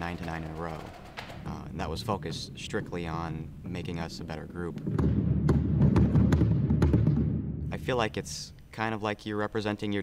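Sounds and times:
sharp drum cracks: 0:04.8 - 0:07.8
snare drums: 0:04.8 - 0:08.0
marching bass drums: 0:04.8 - 0:08.1.

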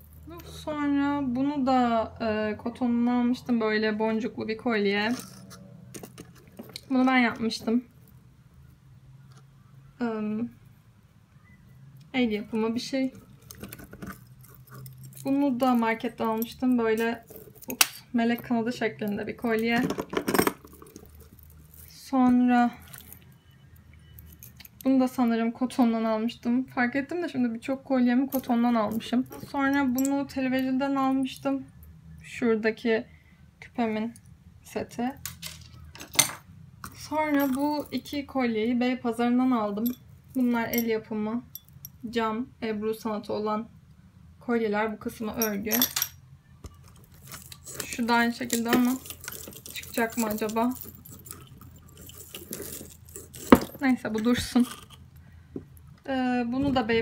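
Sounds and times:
necklaces and chains rattling: 0:04.8 - 0:08.2, 0:12.4 - 0:25.8, 0:28.1 - 0:31.9, 0:35.2 - 0:38.4, 0:39.5 - 0:42.0, 0:45.1 - 0:55.2
metal chains jingling: 0:13.4 - 0:17.8, 0:47.0 - 0:54.0.

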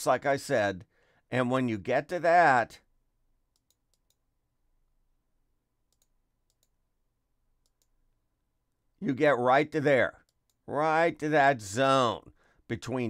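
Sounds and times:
computer mouse clicks: 0:03.5 - 0:04.2, 0:05.9 - 0:06.8, 0:07.6 - 0:08.0.

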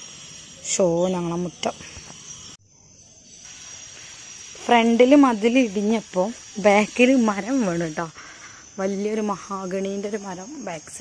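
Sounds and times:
insect chirring: 0:00.0 - 0:11.0
woman speaking: 0:00.7 - 0:01.9, 0:04.6 - 0:08.2, 0:08.8 - 0:11.0.

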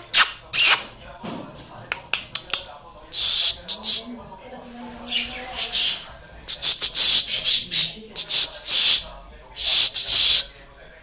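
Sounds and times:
budgerigars chattering and screeching: 0:04.6 - 0:09.0
wavering whistle: 0:04.7 - 0:06.1.

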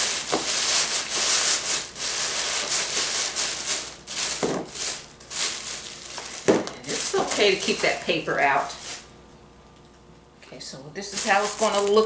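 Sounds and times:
tissue paper rustling and crinkling: 0:00.0 - 0:09.1, 0:11.0 - 0:12.0.

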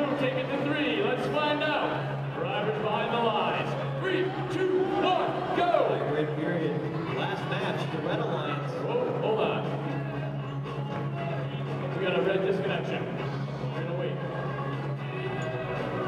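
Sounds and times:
faint music: 0:00.0 - 0:16.0
indistinct voices echoing: 0:00.0 - 0:16.0.

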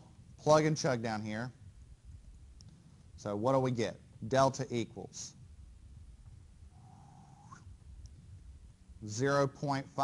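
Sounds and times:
low steady hum: 0:00.0 - 0:10.0
faint thin rising tone: 0:06.7 - 0:07.7.

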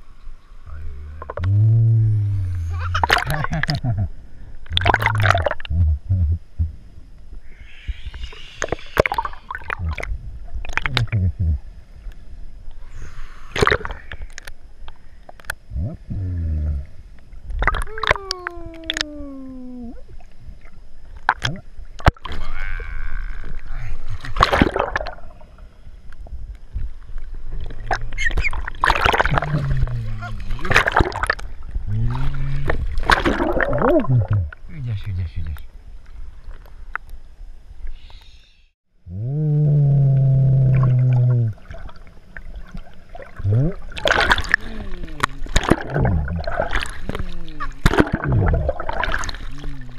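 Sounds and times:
water clicks and gurgles: 0:00.7 - 0:01.6, 0:02.4 - 0:06.5, 0:08.0 - 0:12.8, 0:13.4 - 0:37.2, 0:40.2 - 0:49.9
muffled voice underwater: 0:00.7 - 0:04.1, 0:04.7 - 0:06.7, 0:07.6 - 0:10.2, 0:10.8 - 0:11.7, 0:15.7 - 0:17.0, 0:17.7 - 0:20.1, 0:22.3 - 0:24.3, 0:29.2 - 0:31.0, 0:31.9 - 0:35.6, 0:43.4 - 0:49.9.

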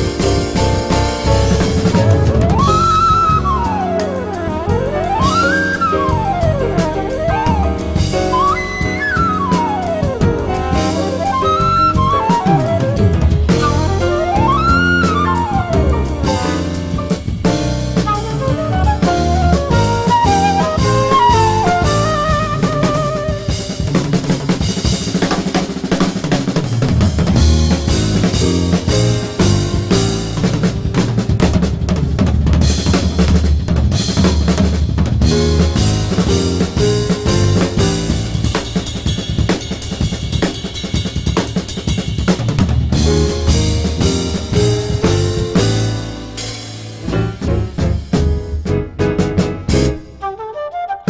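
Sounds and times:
upright bass: 0:00.0 - 0:40.4, 0:41.8 - 0:50.4
drum kit playing: 0:00.0 - 0:50.5
flute wavering note: 0:02.1 - 0:16.1, 0:18.0 - 0:23.8, 0:50.2 - 0:51.0.

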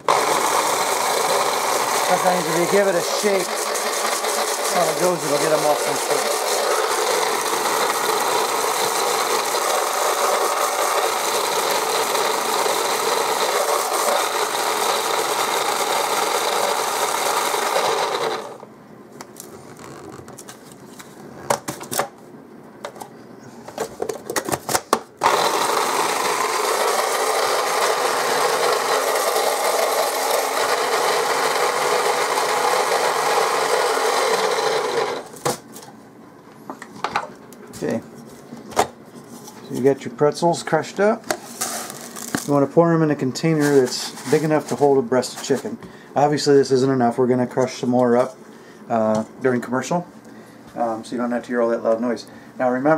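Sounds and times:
food processor motor whirring: 0:00.0 - 0:18.7, 0:25.2 - 0:35.4.

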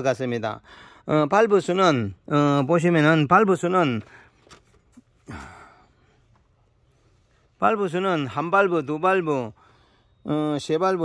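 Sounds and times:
man sighing: 0:05.2 - 0:06.2.

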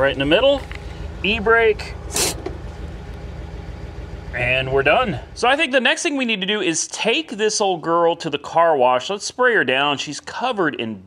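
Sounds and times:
car engine idling: 0:00.0 - 0:10.4
parking brake rasp: 0:00.4 - 0:03.1.

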